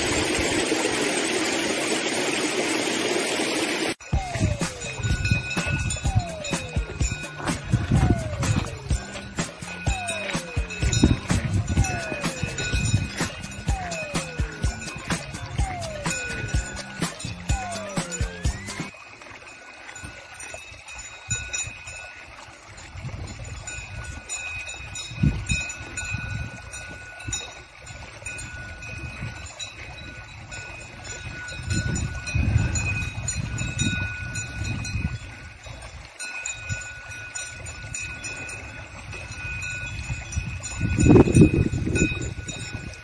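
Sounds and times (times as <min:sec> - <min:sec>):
cowbells ringing: 0:04.0 - 0:43.0
wind rumbling on microphone: 0:04.1 - 0:10.1, 0:10.7 - 0:13.9, 0:22.8 - 0:43.0.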